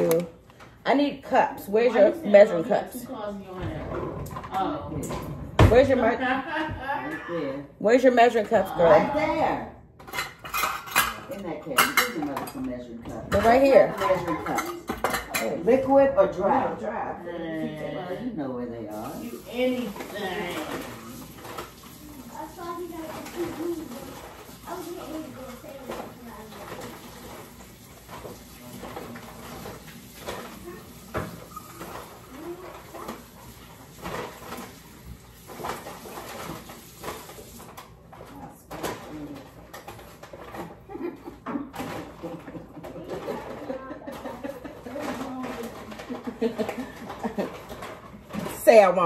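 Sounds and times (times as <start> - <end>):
kitchen things clattering: 0.0 - 7.2, 7.8 - 17.1, 18.9 - 49.0.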